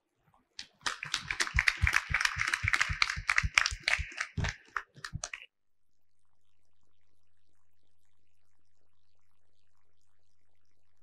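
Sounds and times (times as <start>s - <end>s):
audience applauding: 0.6s - 5.4s.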